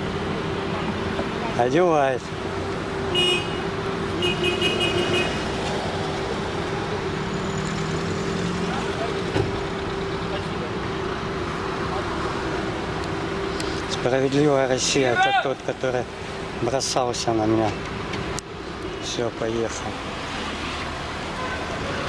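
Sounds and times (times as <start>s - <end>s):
street traffic hum: 0.0s - 22.0s.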